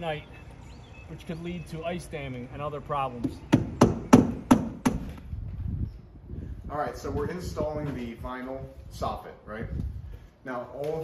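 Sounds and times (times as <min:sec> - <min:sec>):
hammer driving nails into wood: 0:03.5 - 0:05.2.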